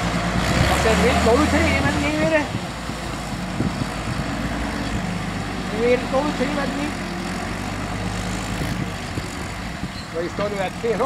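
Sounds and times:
tractor diesel engine under load: 0.0 - 11.0.

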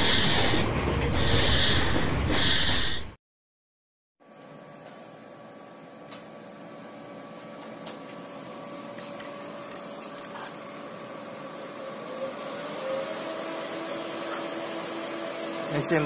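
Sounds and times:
cooling fans whirring: 0.0 - 2.9, 4.2 - 16.0.

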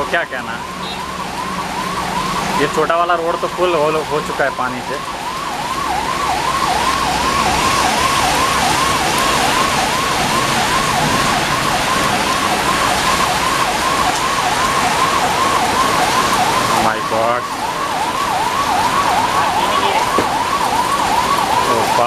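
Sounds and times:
heavy rain: 0.0 - 22.0
siren yelping: 0.0 - 22.0.

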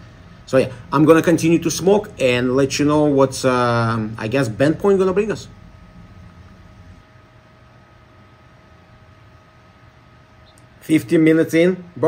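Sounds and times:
thin steady hum tone: 0.0 - 12.0.

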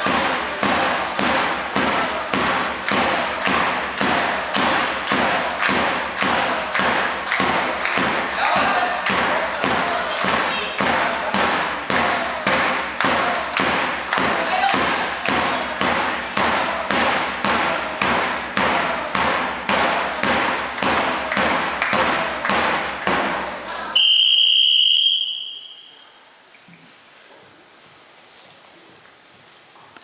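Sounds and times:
large drum beating: 0.0 - 23.5
crowd voices: 0.0 - 26.3
referee's whistle blast: 24.0 - 26.2.

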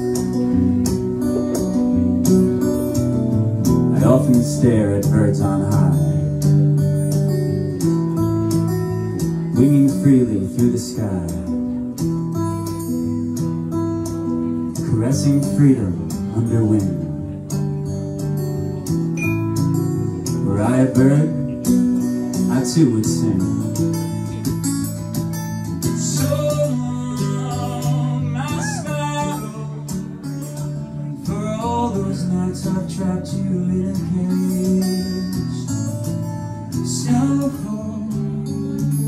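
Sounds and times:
acoustic guitar strumming: 0.0 - 39.0
person singing: 26.0 - 35.6.

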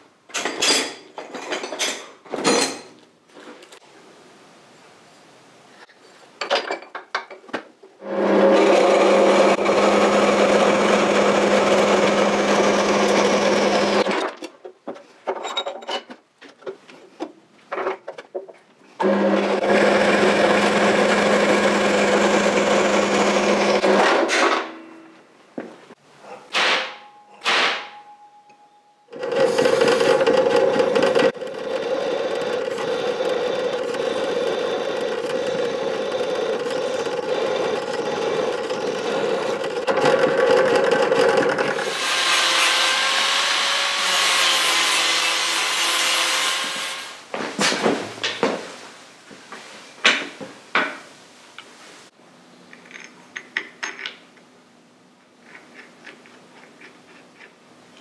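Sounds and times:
drill press boring steel: 8.0 - 14.1, 19.0 - 24.1, 29.1 - 47.2
power saw running: 8.0 - 14.1, 19.0 - 24.3.

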